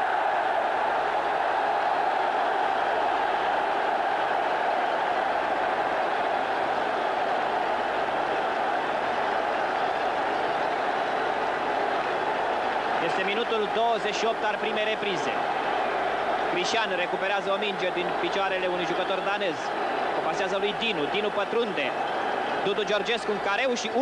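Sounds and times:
stadium crowd cheering: 0.0s - 24.0s.

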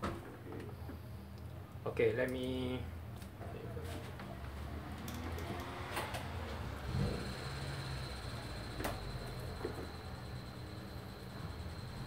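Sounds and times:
faint high whine: 6.7s - 12.0s.

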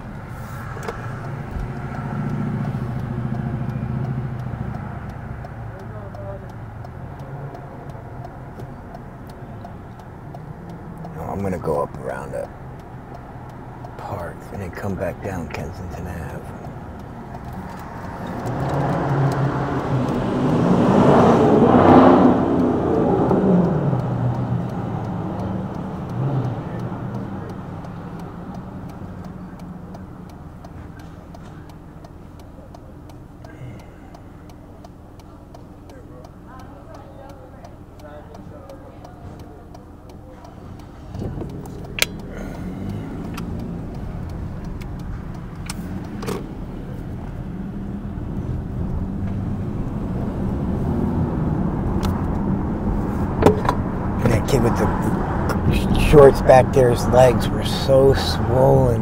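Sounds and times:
car road noise: 0.0s - 59.0s
vehicle passing: 0.0s - 59.0s
sharp click: 41.2s - 42.3s.

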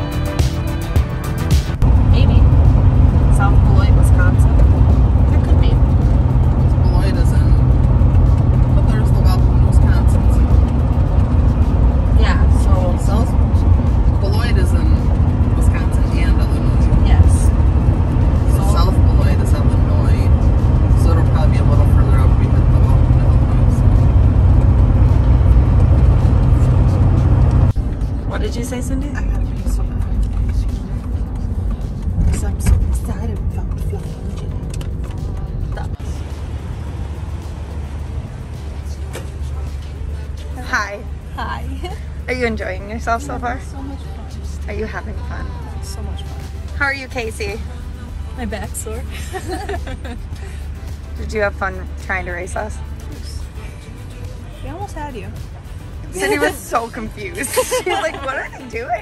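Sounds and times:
music: 0.0s - 26.8s, 27.4s - 36.3s, 39.4s - 59.0s
road and engine rumble: 0.0s - 59.0s
voices: 2.0s - 27.4s, 28.0s - 59.0s.

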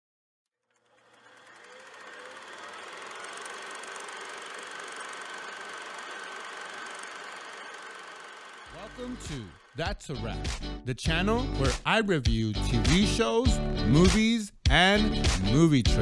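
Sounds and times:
film projector rattling: 0.6s - 10.0s.

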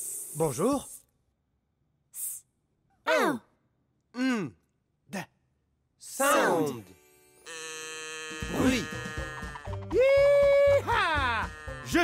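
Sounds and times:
held musical tone: 6.8s - 12.0s.

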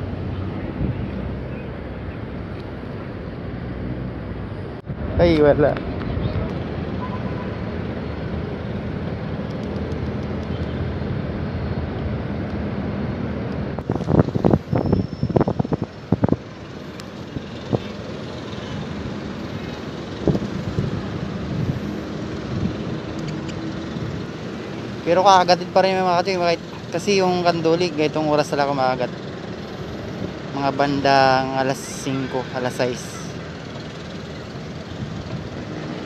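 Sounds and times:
wind on microphone: 13.7s - 16.6s, 20.1s - 24.4s.

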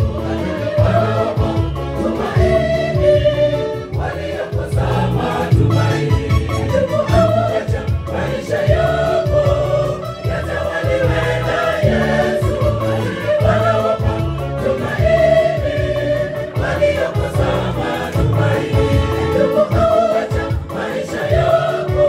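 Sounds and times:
choir singing gospel song: 0.0s - 22.0s
rhythmic bass line: 0.0s - 22.0s.

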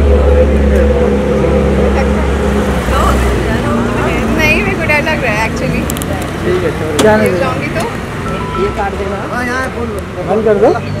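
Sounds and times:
people's voices: 0.0s - 11.0s
vehicle engine rumble: 0.0s - 11.0s.

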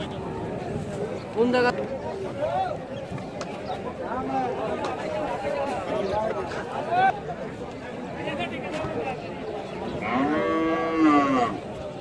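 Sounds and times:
cow mooing: 10.0s - 11.6s.

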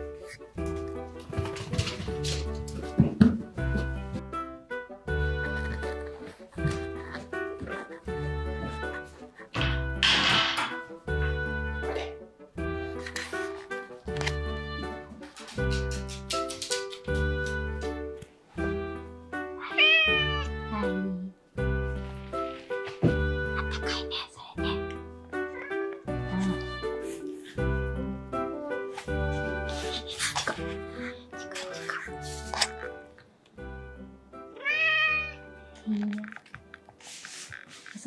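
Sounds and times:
background music: 0.0s - 38.0s
cat meowing: 19.6s - 20.7s, 25.4s - 26.9s, 34.5s - 35.4s.

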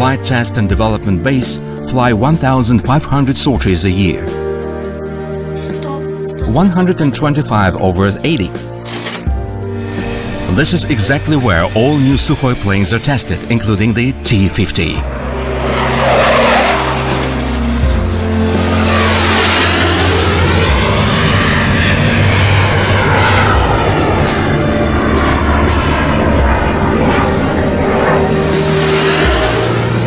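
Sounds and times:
jet fighter roar: 8.8s - 30.0s.

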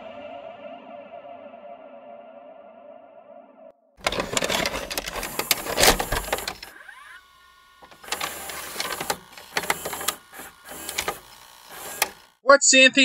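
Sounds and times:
mechanical whirring with clicking: 4.0s - 12.4s.

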